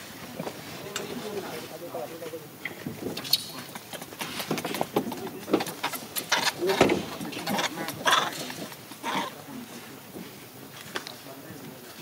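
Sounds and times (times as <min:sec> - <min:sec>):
monkeys calling: 0:03.1 - 0:09.5.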